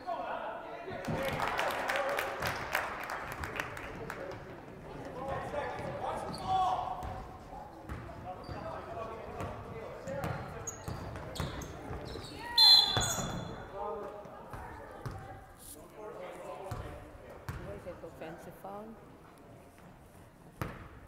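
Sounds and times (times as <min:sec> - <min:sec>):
voices in echoing gym: 0:00.0 - 0:20.6.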